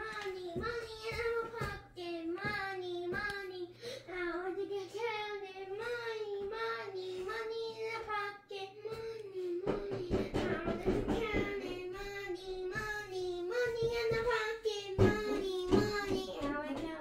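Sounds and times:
child singing: 0.0 - 17.0
child breathing: 3.6 - 4.2, 6.7 - 7.5.

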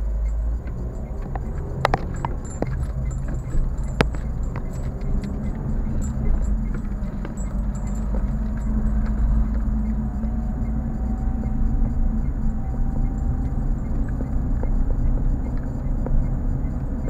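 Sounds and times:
car engine and road rumble: 0.0 - 17.0
light clicks and rattles: 0.1 - 17.0.

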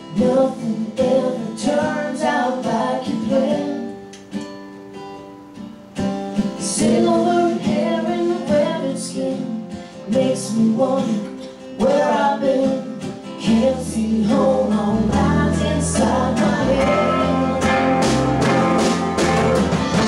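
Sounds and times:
band playing country-folk song: 5.9 - 20.0.

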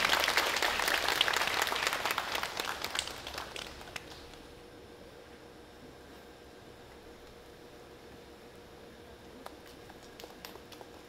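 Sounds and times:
large audience applauding: 0.0 - 4.3.

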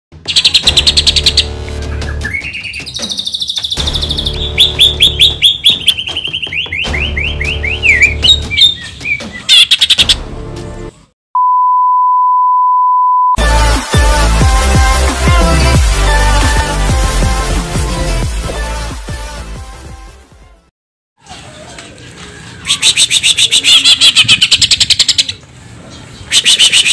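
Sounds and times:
bird singing chirps and trills: 0.2 - 10.2, 22.5 - 26.9
backing music track: 0.2 - 11.0, 13.4 - 20.6
steady beep: 11.4 - 13.4
electronic music: 13.4 - 19.6.

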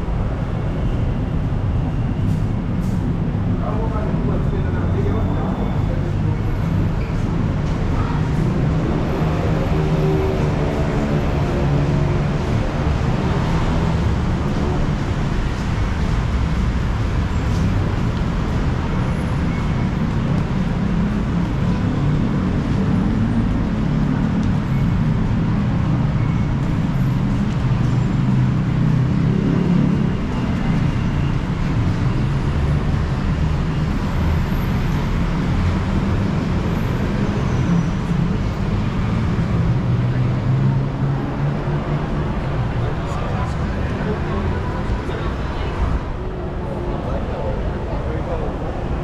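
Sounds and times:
road traffic rumble: 0.0 - 49.0.

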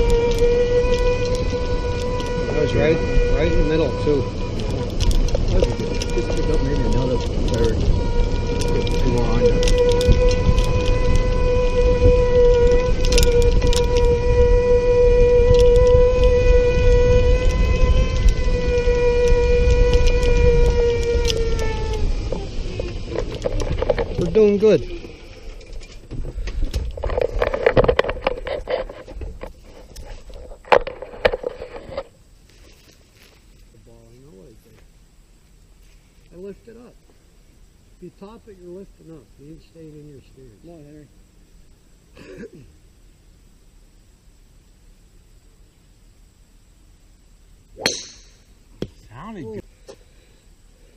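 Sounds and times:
motor running with whine: 0.0 - 25.8.

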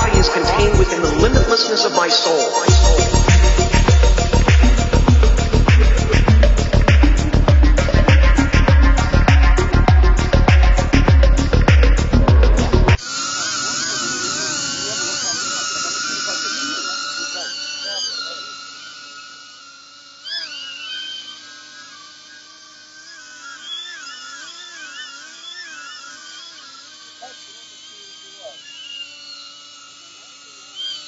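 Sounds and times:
music: 0.0 - 13.0
drone propellers whining: 0.0 - 31.0.

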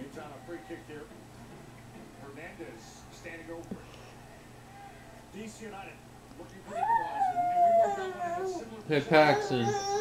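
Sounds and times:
baby squealing: 6.7 - 8.7, 9.3 - 10.0.

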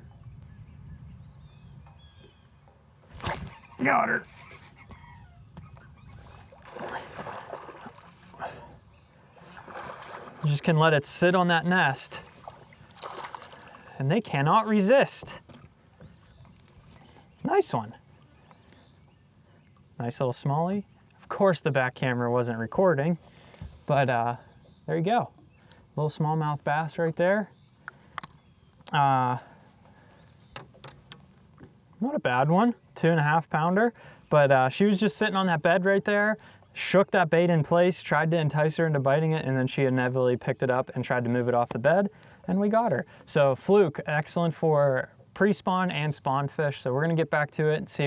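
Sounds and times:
fish splashing at surface: 6.5 - 8.4.

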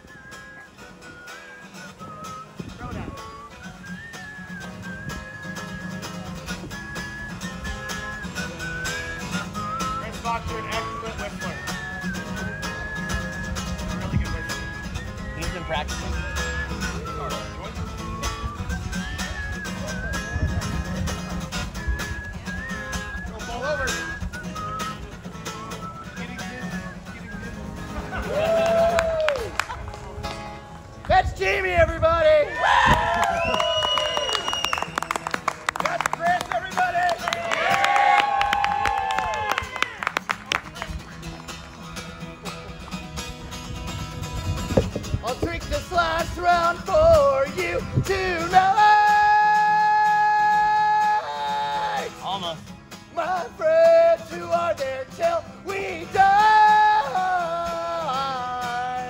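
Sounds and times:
whistled melody: 0.0 - 28.7, 33.2 - 35.3
acoustic guitar strumming: 0.0 - 29.1, 33.6 - 59.0.

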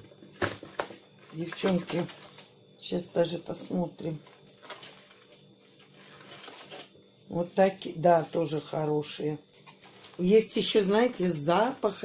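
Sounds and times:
plastic wrapper crinkling: 0.4 - 2.5, 4.0 - 7.0, 9.6 - 11.9.

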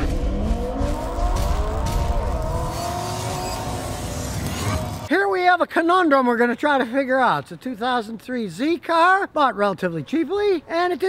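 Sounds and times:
car engine revving: 0.0 - 5.1.

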